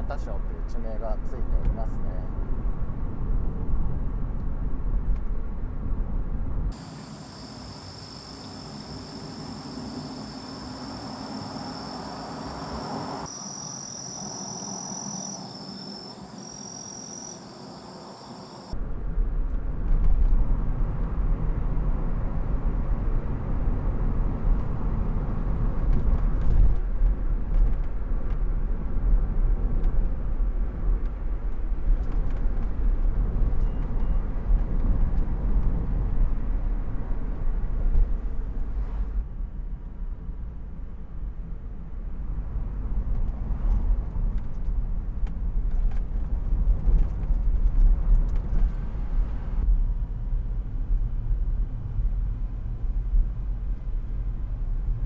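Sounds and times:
car cabin road and engine noise: 0.0 - 55.0
high-pitched insect chorus: 6.8 - 18.7.

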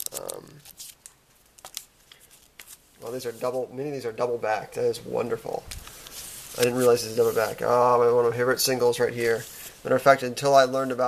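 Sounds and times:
paper sleeves rustling: 0.0 - 11.0.

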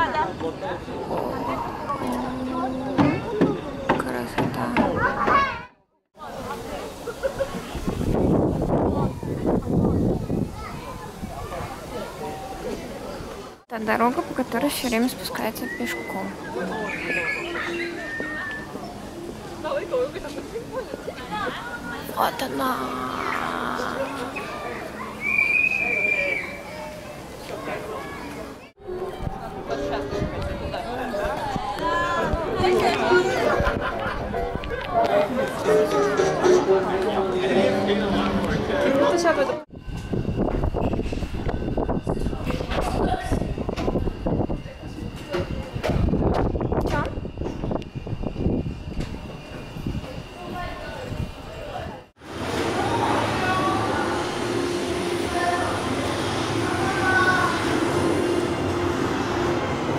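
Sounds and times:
people chattering: 0.0 - 47.4, 48.0 - 59.9.

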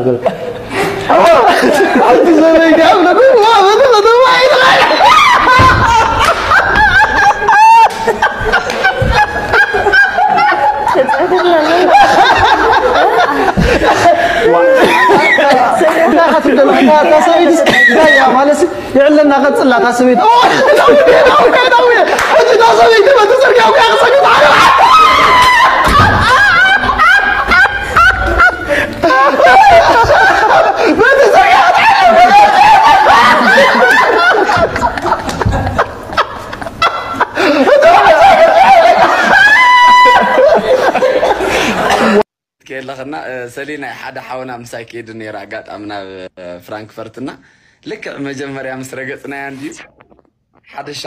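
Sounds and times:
people laughing loudly: 0.0 - 18.7, 19.4 - 42.3.

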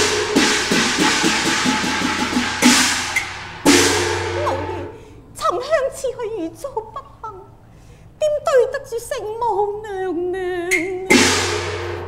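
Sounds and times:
percussion ensemble playing: 0.0 - 5.0, 11.1 - 12.0
quick drum strokes: 0.0 - 5.0, 11.1 - 12.0
ringing cymbals: 0.0 - 5.2, 11.1 - 12.0.

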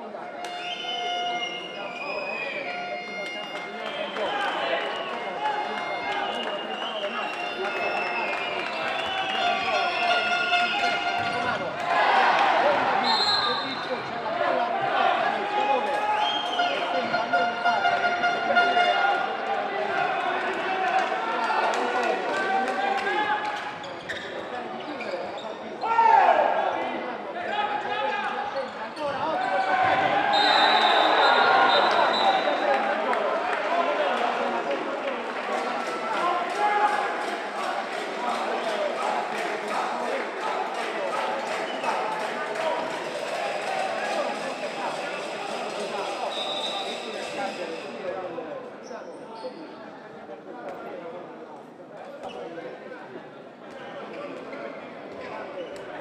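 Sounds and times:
players and spectators voices: 0.0 - 56.0
shoe squeaks: 23.8 - 25.8.

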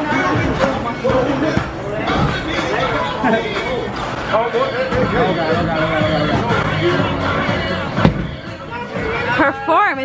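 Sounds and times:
background music: 0.0 - 10.0
people chattering: 0.0 - 10.0
sharp knock: 8.0 - 8.4.

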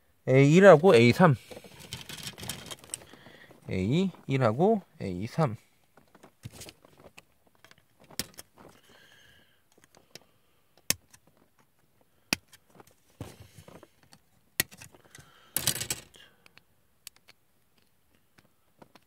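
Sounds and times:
plastic parts clattering: 1.4 - 3.4, 12.4 - 16.3.

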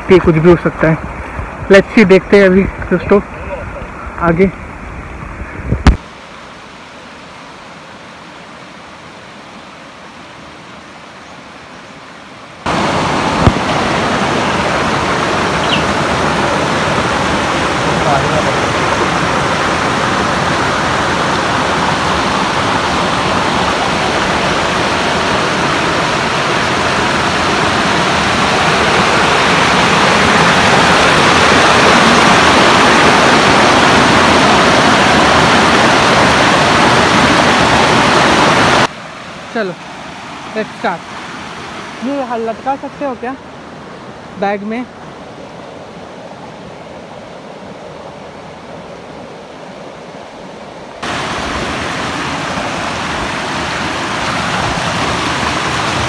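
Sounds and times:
waterfall rushing over rocks: 0.0 - 45.2, 50.7 - 56.0.

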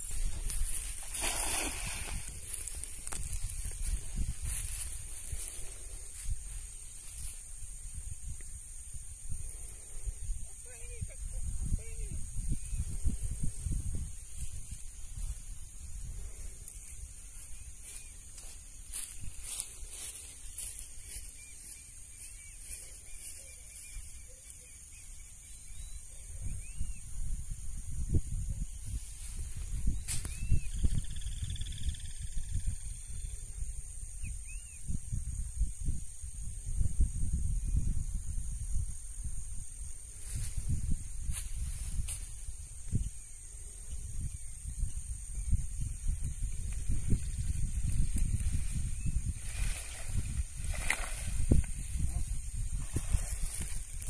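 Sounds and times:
wind rumbling on microphone: 0.0 - 54.0.

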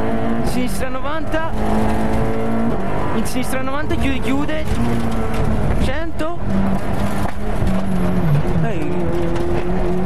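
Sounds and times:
rally car engine from inside cabin: 0.0 - 10.0.

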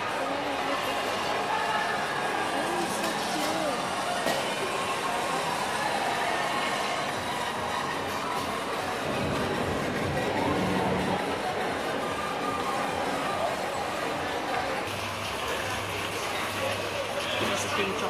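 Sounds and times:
indistinct distant voices: 0.0 - 18.0.

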